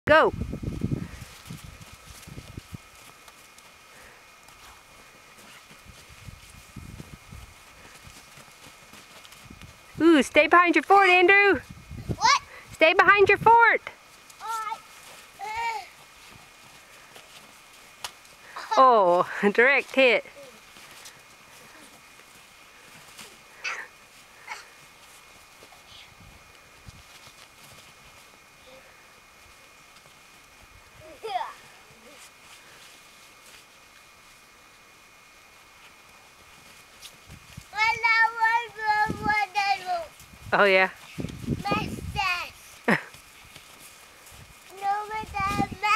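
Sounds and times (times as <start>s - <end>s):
faint steady high hum: 0.1s - 45.9s
rustles: 0.1s - 45.9s
children's high-pitched yelps: 12.1s - 12.5s, 15.4s - 15.9s.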